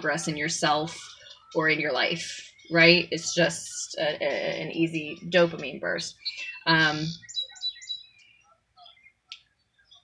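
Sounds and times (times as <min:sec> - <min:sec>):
small bird chirping: 0:04.4 - 0:10.0.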